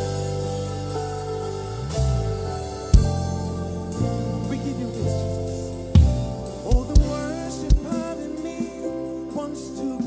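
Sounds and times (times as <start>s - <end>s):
low bass notes: 0.0s - 10.0s
sustained keyboard chords: 0.0s - 10.0s
drum hit: 6.0s - 7.9s.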